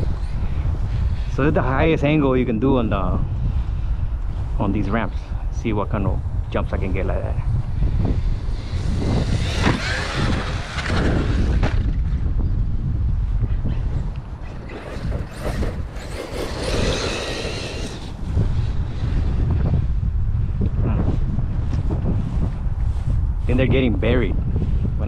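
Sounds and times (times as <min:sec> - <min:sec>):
wind buffeting microphone: 0:00.0 - 0:25.0
electric toy truck motor whining: 0:08.5 - 0:11.9, 0:14.4 - 0:18.3.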